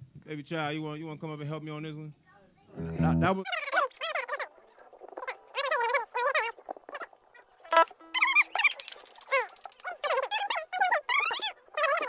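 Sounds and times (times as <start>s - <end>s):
high-pitched voice swooping: 2.8s - 3.4s.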